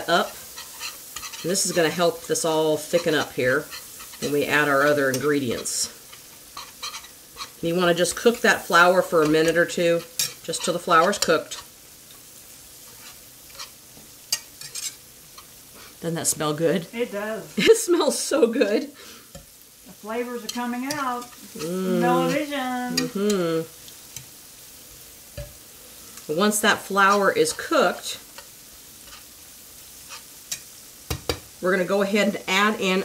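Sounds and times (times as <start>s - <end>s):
vegetables sizzling in butter: 0.0s - 33.0s
whisk scraping and tapping pan: 0.1s - 11.7s, 12.8s - 15.5s, 20.4s - 21.6s, 28.3s - 29.3s, 30.0s - 31.5s.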